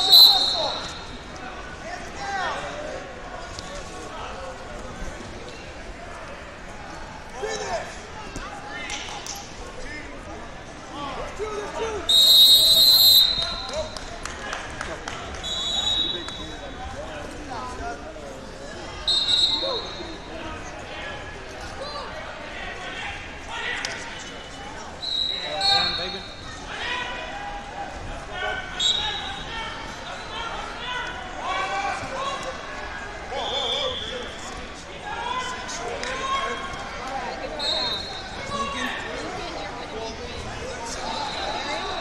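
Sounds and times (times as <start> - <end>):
referee whistle blowing: 0.0 - 1.1, 12.1 - 13.8, 15.4 - 16.5, 19.1 - 20.0, 25.0 - 26.3, 28.8 - 29.5, 33.4 - 34.4, 37.6 - 38.4
fainter distant whistles: 0.0 - 1.2, 33.3 - 34.4
hubbub of many voices: 0.0 - 42.0.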